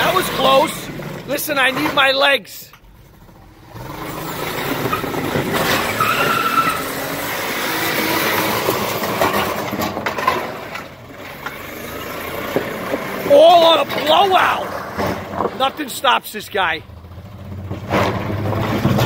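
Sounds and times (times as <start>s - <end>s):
tires squealing on asphalt: 0.0s - 2.2s, 3.0s - 19.0s
car engine revving hard: 3.4s - 9.8s.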